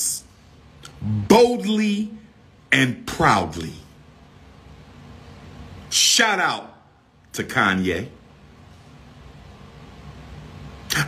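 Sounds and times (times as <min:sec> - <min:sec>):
low steady background rumble: 0:00.0 - 0:11.0
man's voice: 0:01.0 - 0:03.9.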